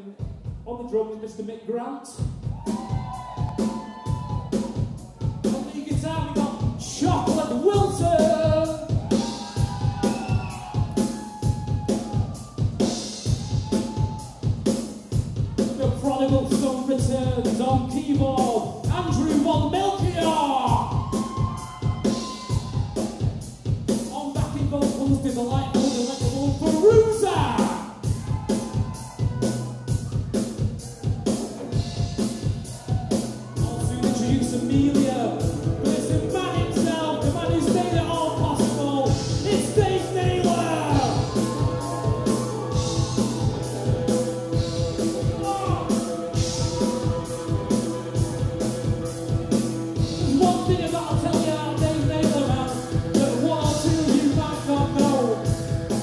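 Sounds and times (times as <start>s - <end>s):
rock drum kit beat: 0.1s - 0.7s, 2.2s - 56.0s
held bass line: 2.2s - 56.0s
keyboards: 24.1s - 56.0s.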